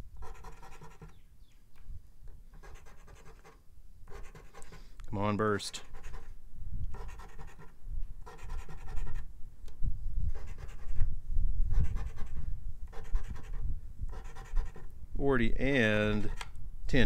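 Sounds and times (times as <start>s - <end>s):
coin scratching lottery ticket: 0.2s - 1.2s, 2.6s - 4.8s, 5.7s - 6.3s, 7.0s - 9.2s, 10.3s - 11.1s, 11.8s - 14.9s.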